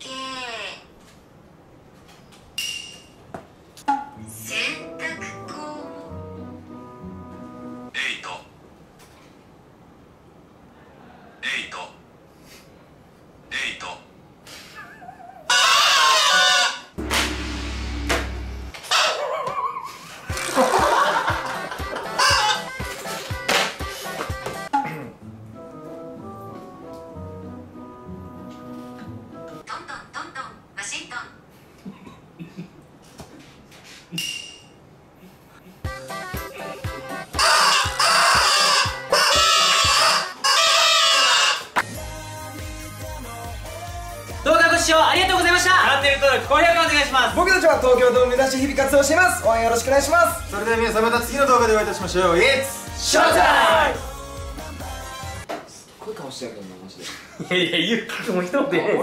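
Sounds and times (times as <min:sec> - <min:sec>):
background music with steady beat: 0:17.0 - 0:18.7, 0:20.3 - 0:29.6, 0:35.8 - 0:40.2, 0:41.8 - 0:55.5
deep low drone: 0:17.0 - 0:18.7
party horn buzzing blasts: 0:17.0 - 0:18.7
people laughing: 0:19.2 - 0:22.6.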